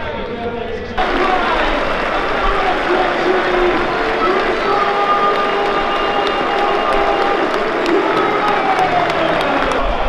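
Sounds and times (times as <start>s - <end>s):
stadium crowd cheering and clapping: 1.0s - 10.0s.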